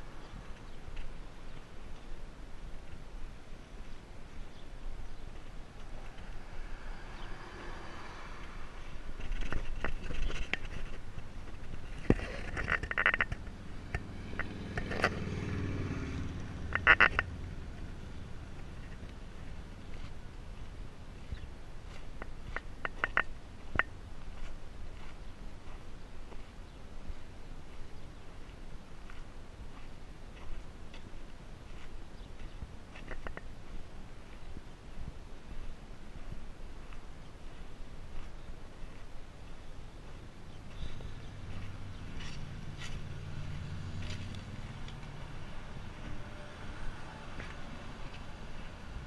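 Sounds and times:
footsteps on dirt and rubble: 0:00.1 - 0:06.4, 0:08.8 - 0:15.0, 0:18.5 - 0:46.2
camera handling rumble: 0:09.1 - 0:15.2.

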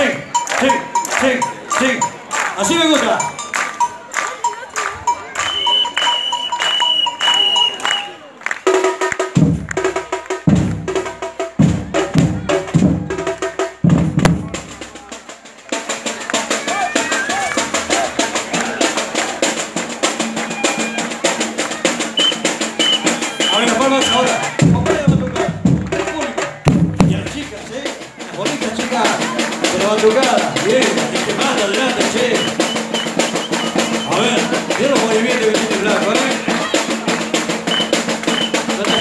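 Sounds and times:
percussion group drumming: 0:00.0 - 0:39.0
deep drum strokes: 0:09.2 - 0:15.1, 0:23.8 - 0:39.0.

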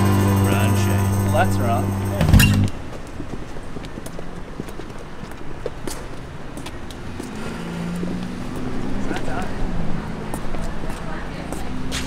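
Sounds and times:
traffic hum: 0:00.0 - 0:12.0
boot heels on concrete: 0:02.1 - 0:09.6, 0:10.2 - 0:12.0.

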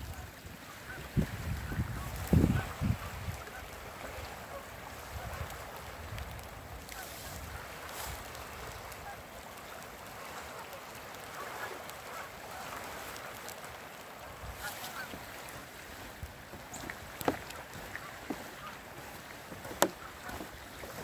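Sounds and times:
wind buffeting microphone: 0:00.0 - 0:09.2
faint bird calls: 0:08.4 - 0:15.6, 0:16.6 - 0:21.0.

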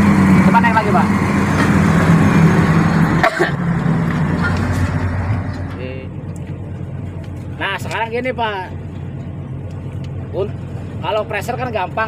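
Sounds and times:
hydraulic roar: 0:00.0 - 0:05.8
excavator diesel engine running hard: 0:00.0 - 0:08.0.

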